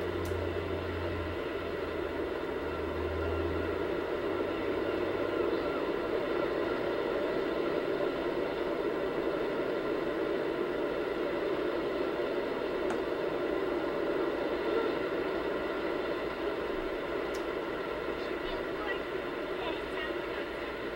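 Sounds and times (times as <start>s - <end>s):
low hum: 0.0s - 20.9s
beach ambience rushing noise: 4.2s - 20.9s.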